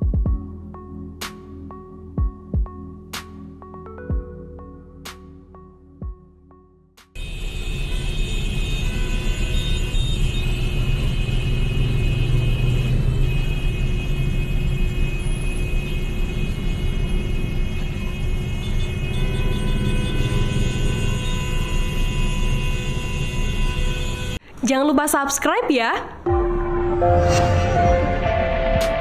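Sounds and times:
road traffic: 7.2 - 29.0.

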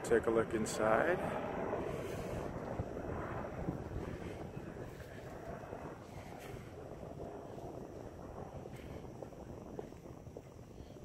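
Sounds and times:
low outdoor rumble: 0.0 - 11.0
wind on microphone: 0.0 - 11.0.

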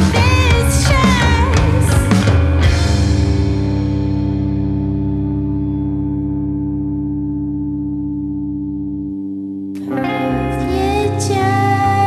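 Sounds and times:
distorted guitar chord with echo: 0.0 - 12.0
rock music: 0.0 - 12.0.

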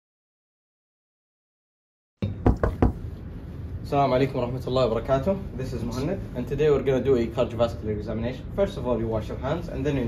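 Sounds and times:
knuckle knocks on a door: 2.2 - 3.0.

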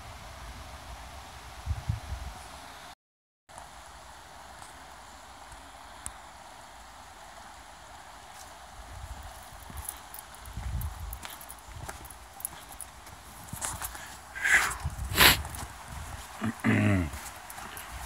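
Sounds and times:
steady hiss: 3.5 - 18.0
footsteps on rocky dirt trail: 8.3 - 18.0.

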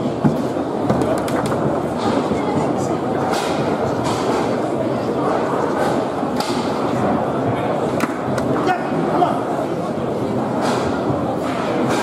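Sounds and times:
murmur of voices: 0.0 - 12.0
foosball ball clacks: 0.2 - 2.3.

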